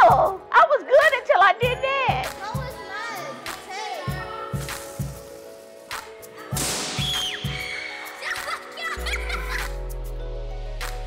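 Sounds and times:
background music with beat: 0.0 - 11.0
balloon air hissing and whistling: 6.5 - 8.2.

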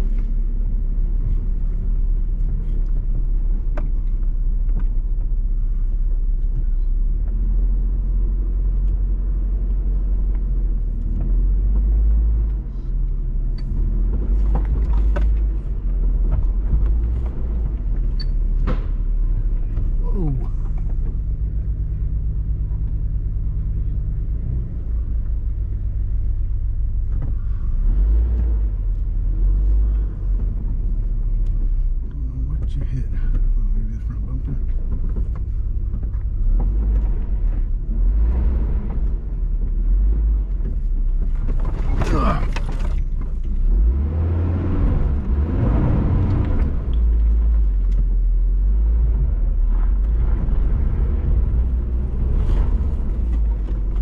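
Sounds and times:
vehicle engine rumbling: 0.0 - 54.0.

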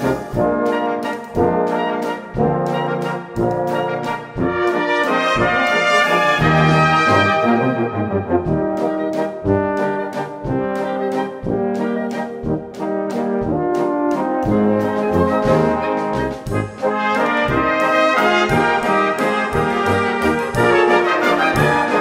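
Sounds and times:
brass band playing a waltz: 0.0 - 22.0.

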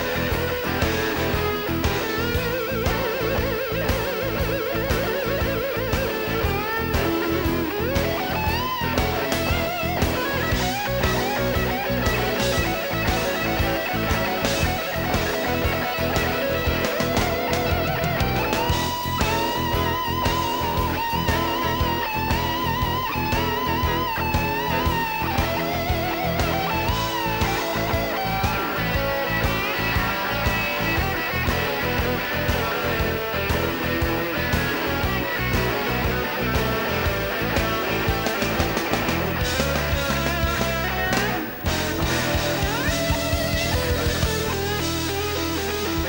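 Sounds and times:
bass guitar: 0.0 - 46.0
drums: 0.0 - 46.0
electric guitar lead: 0.0 - 46.0.

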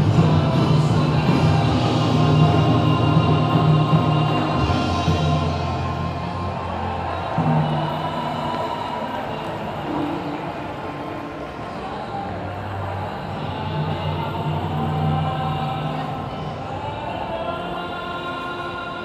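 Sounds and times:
festival music over loudspeakers: 0.0 - 19.0.

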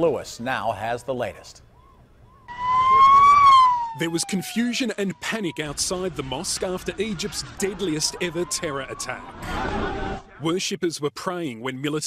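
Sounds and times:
emergency vehicle siren wailing: 1.8 - 10.4.

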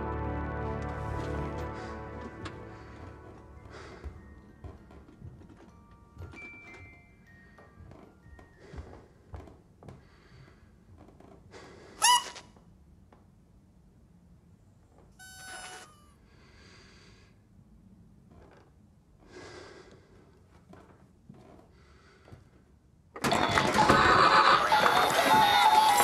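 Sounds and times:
harsh dense film soundtrack: 0.0 - 3.7
high-pitched squeak: 12.0 - 12.5, 15.2 - 16.2.

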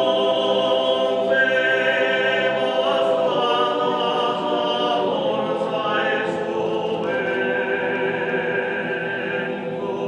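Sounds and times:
male choir singing a cappella: 0.0 - 10.0.

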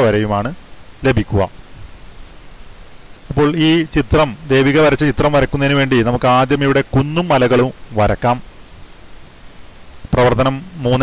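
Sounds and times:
man speaking: 0.0 - 1.5, 3.3 - 8.4, 10.1 - 11.0
steady background hiss: 0.0 - 11.0.

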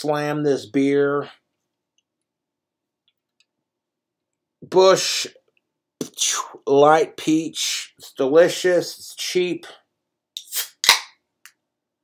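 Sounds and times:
sharp can crack: 10.4 - 11.2.

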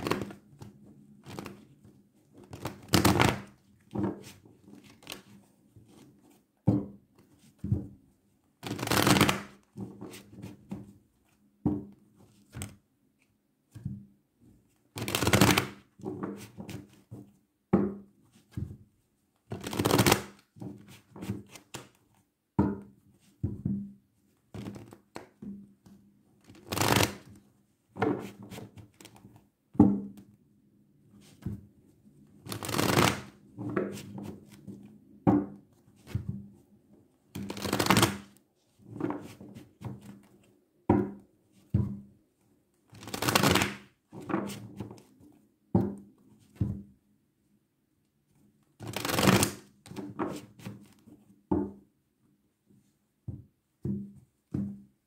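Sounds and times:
cards being shuffled: 0.0 - 0.4, 1.2 - 1.7, 2.4 - 3.5, 4.2 - 6.0, 8.6 - 10.6, 15.0 - 15.8, 19.5 - 21.9, 24.6 - 25.2, 26.5 - 27.3, 32.5 - 34.1, 37.4 - 38.4, 43.0 - 44.6, 48.8 - 49.6.

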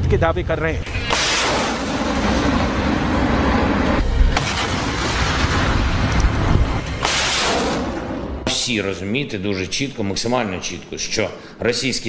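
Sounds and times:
rockets launching: 0.8 - 8.4.

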